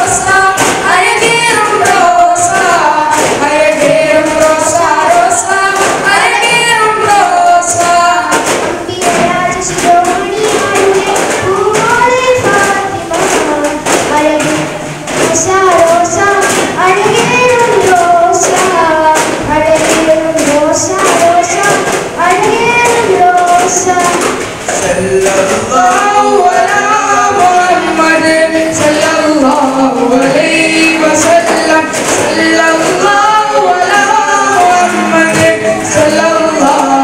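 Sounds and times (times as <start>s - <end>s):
boys singing in chorus: 0.0s - 37.0s
frame drums beating: 0.0s - 37.0s.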